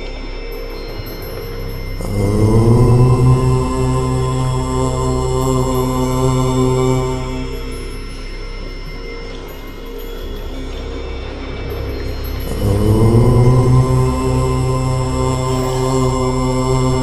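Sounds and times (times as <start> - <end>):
low voice chanting om: 0.0 - 17.0
steady background drone: 0.0 - 17.0.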